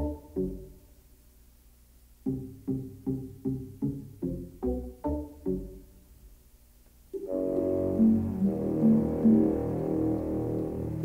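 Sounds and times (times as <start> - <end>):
orchestral brass chord: 7.2 - 11.0.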